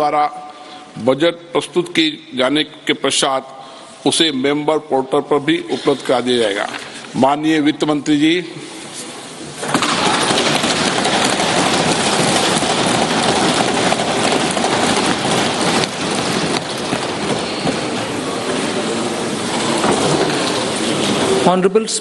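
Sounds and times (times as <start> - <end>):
lawmakers thumping wooden desks: 9.6 - 21.4.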